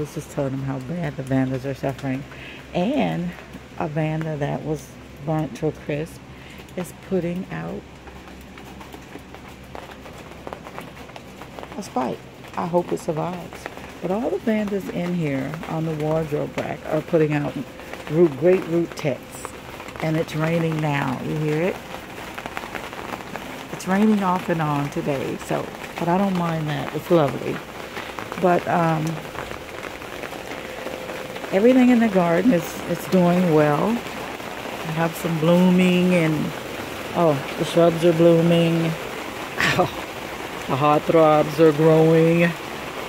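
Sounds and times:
raindrops tapping on surfaces: 0.0 - 43.0.

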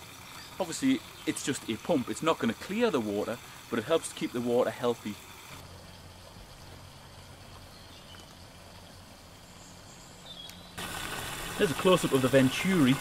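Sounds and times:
pump humming: 0.0 - 13.0
water jetting into pond: 0.0 - 13.0.

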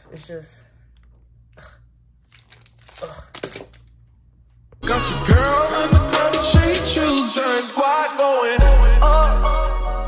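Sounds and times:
plastic wrapper crinkling: 2.2 - 4.0.

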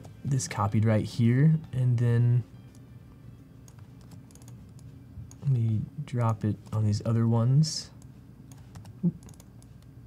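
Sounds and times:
computer keyboard keystrokes: 3.7 - 5.5, 8.5 - 9.9.

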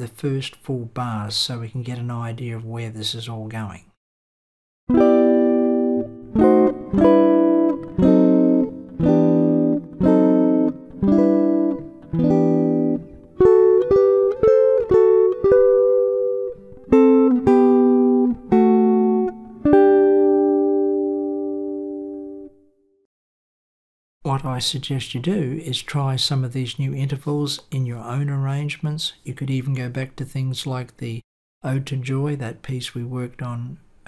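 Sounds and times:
guitar plucking slow chords: 4.9 - 22.5.

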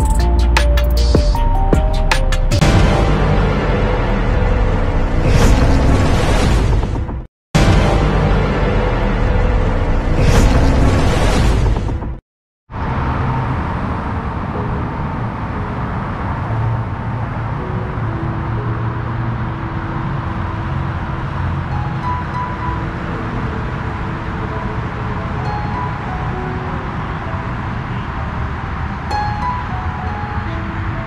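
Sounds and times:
steady low rumble: 1.1 - 12.2
soft background music: 14.6 - 31.0.

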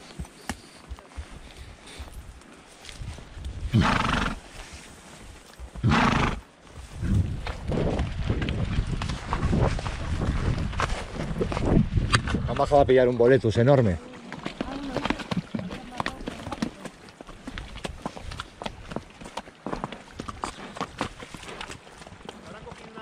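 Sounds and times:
rustling through undergrowth: 0.0 - 11.8
horse hoof steps: 0.0 - 23.0
horse blowing out: 3.7 - 4.4, 5.8 - 6.4.

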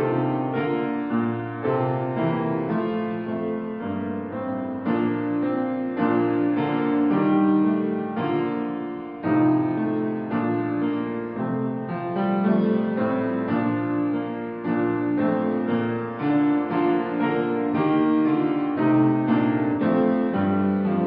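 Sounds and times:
piano playing sustained chords: 0.0 - 21.0.

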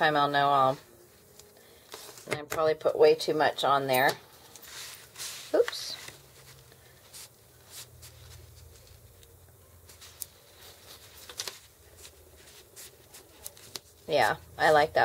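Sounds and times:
paper and twine rustling: 4.4 - 14.4.

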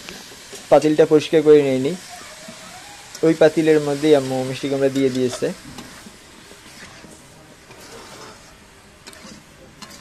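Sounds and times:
vegetables sizzling in a pan: 0.0 - 10.0
metal spatula scraping: 2.5 - 10.0.

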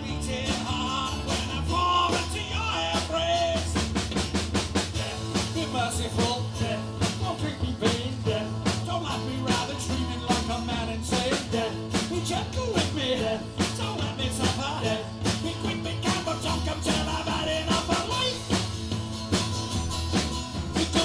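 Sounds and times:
person singing: 0.0 - 3.8, 5.0 - 18.7, 20.7 - 21.0
drum kit beat: 0.0 - 21.0
strummed acoustic guitars: 0.0 - 21.0.

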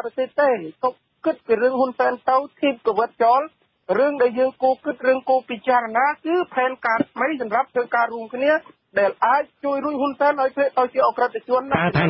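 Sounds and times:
person reading news over telephone: 0.0 - 12.0.

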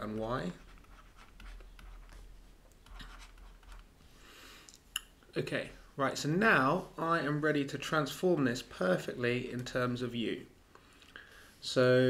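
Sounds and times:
stylus scratching tablet screen: 0.0 - 4.0.

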